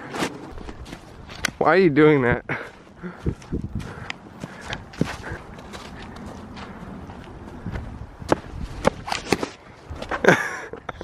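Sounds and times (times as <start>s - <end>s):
footsteps on dry leaves and snow: 0.0s - 1.6s, 2.6s - 8.8s.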